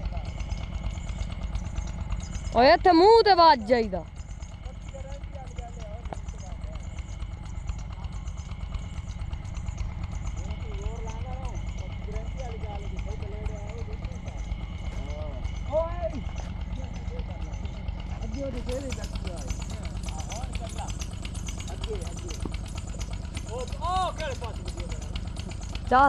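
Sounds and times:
distant voices talking: 0.0s - 26.0s.

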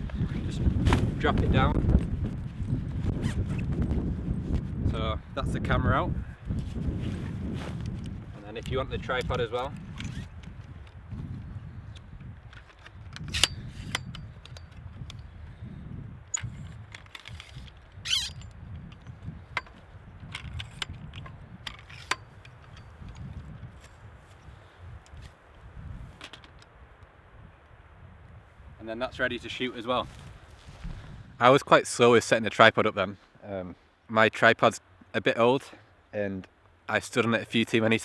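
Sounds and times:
wind rumble on microphone: 0.0s - 31.5s
tripod leg locks clicking: 11.9s - 15.2s, 16.3s - 23.5s.

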